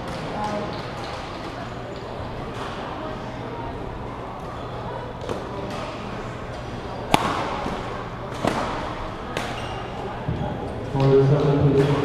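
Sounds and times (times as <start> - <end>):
racket striking shuttlecock: 7.1 - 9.6.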